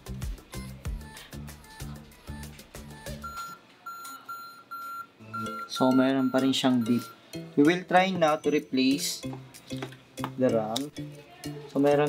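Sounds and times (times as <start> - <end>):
computer error beeps: 3.0 - 7.2.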